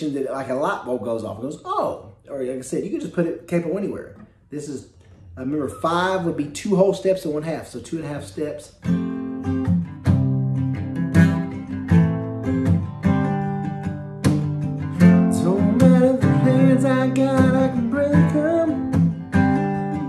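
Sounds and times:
acoustic guitar strumming: 8.8s - 20.0s
person singing: 15.2s - 18.9s.

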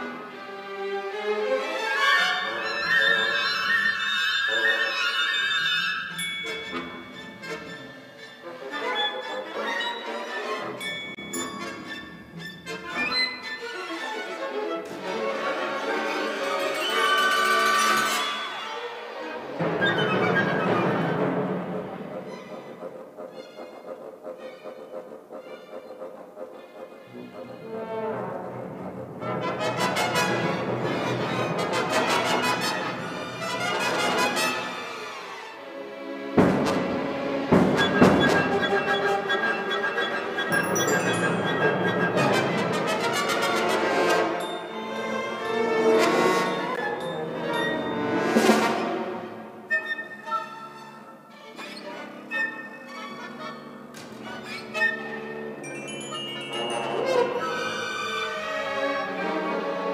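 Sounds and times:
symphony orchestra playing: 0.0s - 59.9s.

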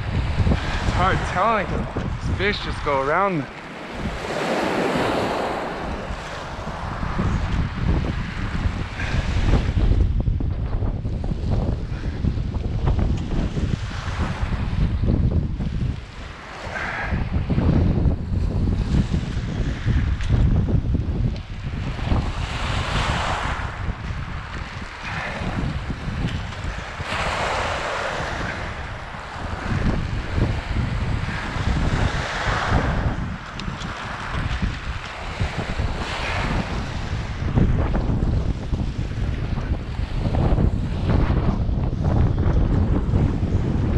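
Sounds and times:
waves washing on gravel: 0.0s - 9.9s, 12.3s - 42.1s
wind buffeting microphone: 0.0s - 43.9s.

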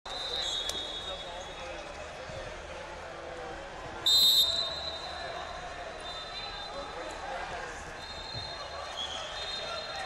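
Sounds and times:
referee whistle: 0.1s - 1.5s, 4.0s - 5.2s, 8.0s - 10.0s
crowd chatter: 0.1s - 10.0s.

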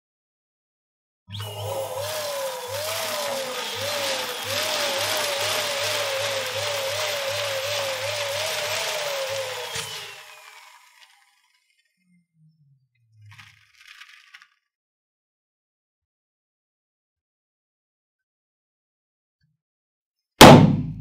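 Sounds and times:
electric balloon pump whining: 1.3s - 12.2s.

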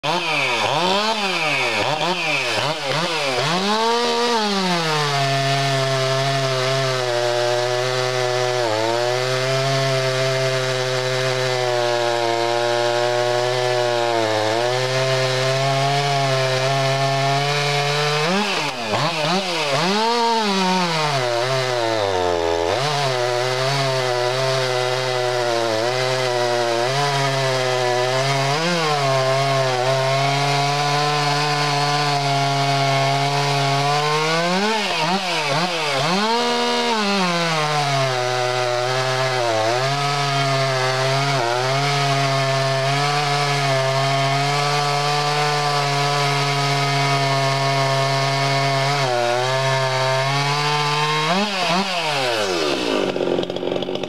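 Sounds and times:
chainsaw cutting log: 0.0s - 54.0s.

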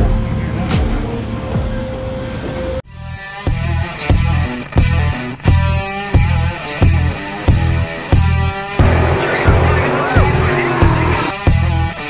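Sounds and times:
rock music with drum beat: 3.2s - 12.0s
race cars on dirt track: 8.8s - 11.4s
rising and falling whine: 8.8s - 11.4s.

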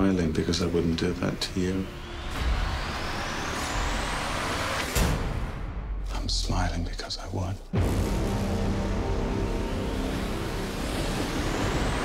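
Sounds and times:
noise swell with rising whine: 0.1s - 5.2s, 8.4s - 12.0s.

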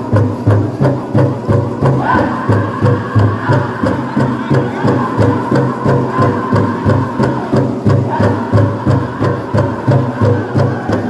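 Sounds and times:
big drum steady beat: 0.0s - 11.0s
group singing: 1.8s - 11.0s.

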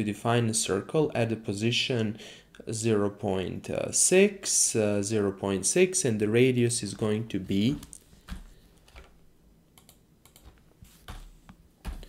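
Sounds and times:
keystrokes on computer keyboard: 9.8s - 12.0s.

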